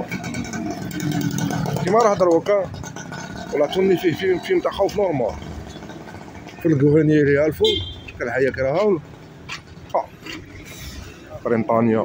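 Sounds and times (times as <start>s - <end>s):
small motorcycle engine passing: 0.0s - 7.0s.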